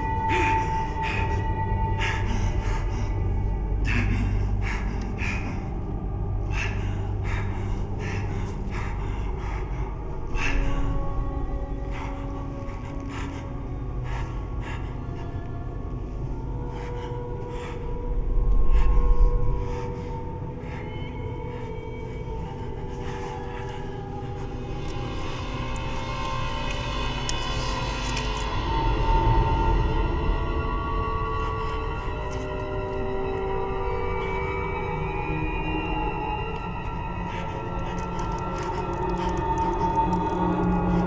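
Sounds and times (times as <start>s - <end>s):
man gasping for breath: 0.0s - 28.2s
low steady drone: 0.0s - 41.0s.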